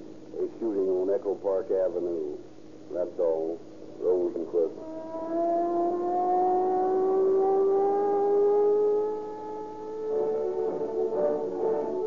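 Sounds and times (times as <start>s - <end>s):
person speaking: 0.4s - 4.8s
siren wailing up: 4.8s - 12.0s.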